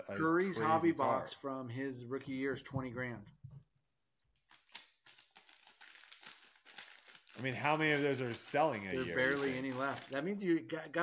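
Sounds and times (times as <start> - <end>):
foil wrapper crinkling: 4.5 - 10.4.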